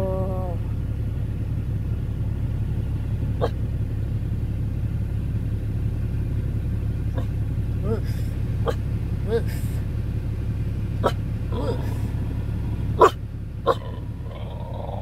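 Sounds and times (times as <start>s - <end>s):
vehicle idling: 0.0s - 15.0s.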